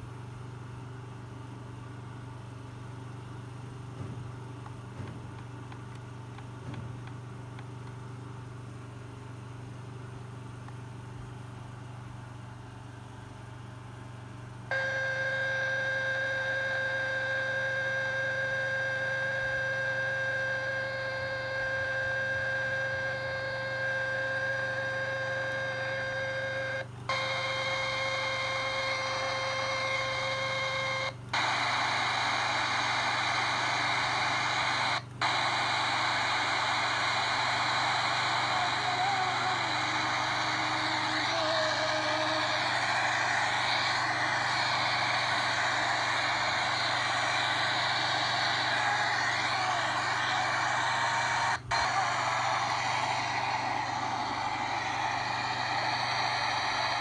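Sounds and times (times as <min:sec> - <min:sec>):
radio static hiss: 0:14.7 - 0:57.0.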